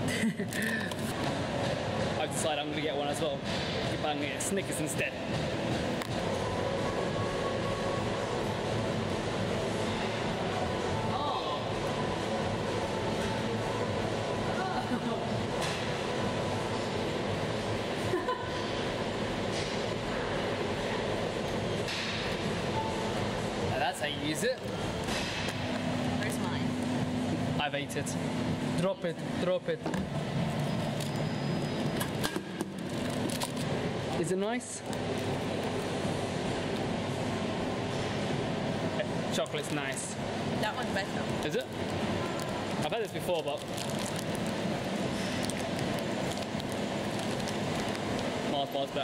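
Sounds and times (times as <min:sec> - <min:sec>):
vending machine humming: 0:00.0 - 0:49.0.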